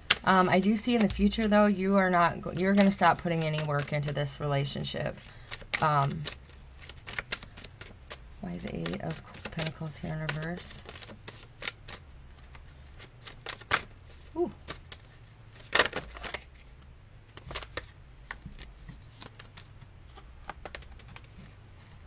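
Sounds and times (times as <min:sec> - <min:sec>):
cards being shuffled: 0:00.0 - 0:01.5, 0:02.4 - 0:04.4, 0:05.0 - 0:21.6
cards clicking and flicking: 0:05.4 - 0:13.9.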